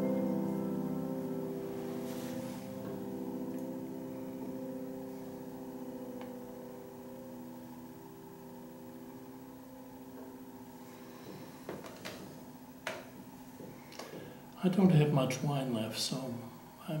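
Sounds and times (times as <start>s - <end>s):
grand piano chord ringing: 0.0s - 16.6s.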